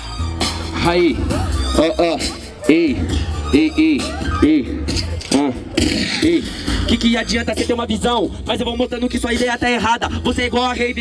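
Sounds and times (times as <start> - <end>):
hip-hop beat with bass line: 0.0 - 11.0
man rapping into a microphone: 0.7 - 11.0.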